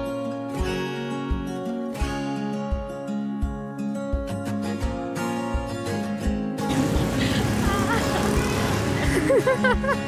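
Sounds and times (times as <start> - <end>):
background music: 0.0 - 10.0
people laughing: 6.6 - 10.0
street traffic noise: 6.6 - 10.0.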